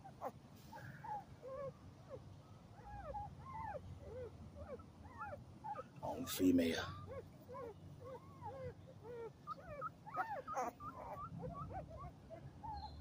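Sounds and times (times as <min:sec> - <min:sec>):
puppy squeaking and whimpering: 0:00.0 - 0:02.2, 0:02.8 - 0:13.0.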